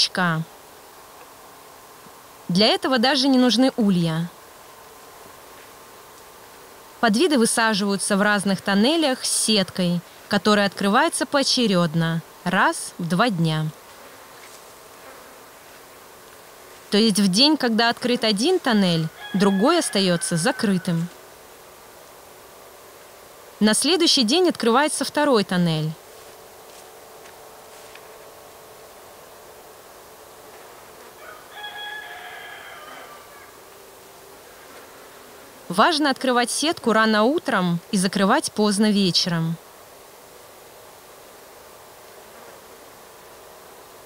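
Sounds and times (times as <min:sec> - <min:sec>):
faint steady background hum: 0:00.0 - 0:44.0
insects buzzing: 0:00.0 - 0:44.0
rooster crowing: 0:18.9 - 0:21.1, 0:31.1 - 0:33.7.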